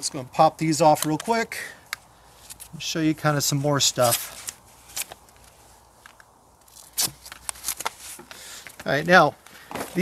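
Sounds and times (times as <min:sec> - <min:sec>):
velcro straps ripping: 0:03.9 - 0:05.6, 0:06.6 - 0:08.2.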